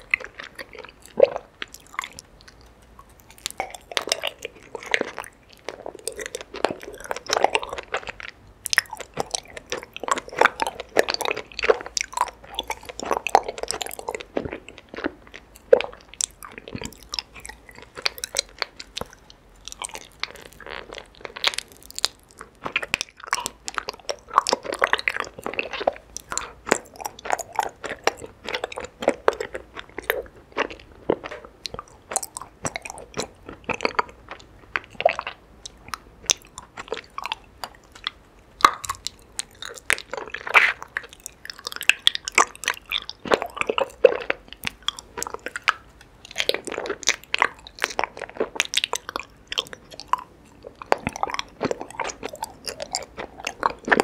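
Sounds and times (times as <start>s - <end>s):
chewing honeycomb crunches: 0.0s - 54.0s.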